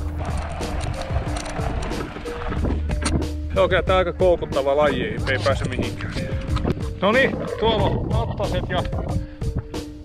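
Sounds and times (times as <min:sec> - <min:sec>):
steady low bass tone: 0:00.0 - 0:09.8.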